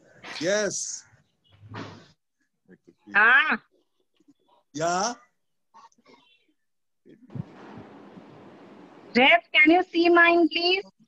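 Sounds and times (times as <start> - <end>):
person speaking over video call: 4.8 - 5.2.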